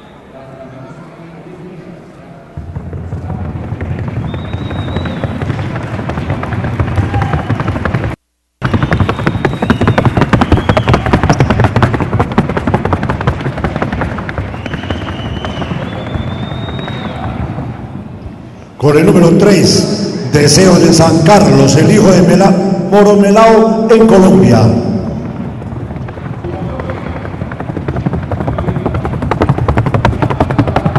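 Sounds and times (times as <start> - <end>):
horse hoofbeats on wooden board: 2.6 - 17.4, 25.0 - 30.9.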